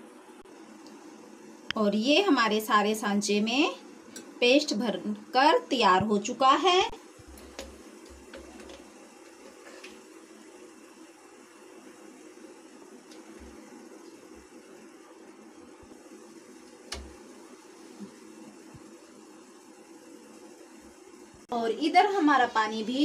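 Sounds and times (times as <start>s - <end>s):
faint background hum: 0.0s - 23.0s.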